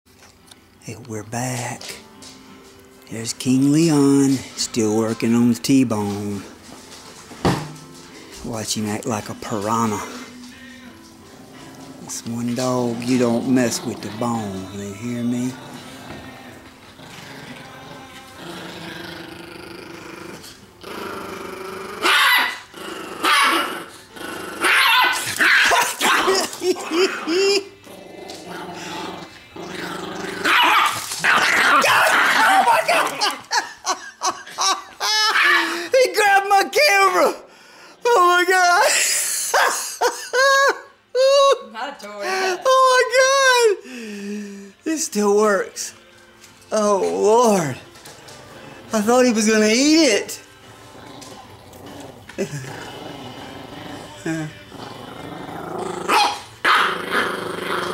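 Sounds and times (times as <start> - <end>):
small dog growling: 15.4 - 25.3, 26.6 - 33.3, 50.7 - 57.9
dog growl-barks: 15.6 - 35.8, 50.7 - 57.9.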